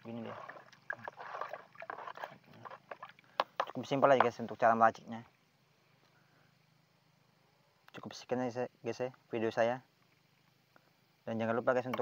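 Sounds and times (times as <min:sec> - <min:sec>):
water sloshing: 0:00.0 - 0:04.4.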